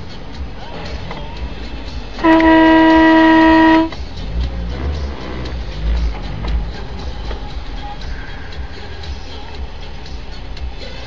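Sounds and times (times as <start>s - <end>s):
vehicle horn blast: 2.2s - 4.0s.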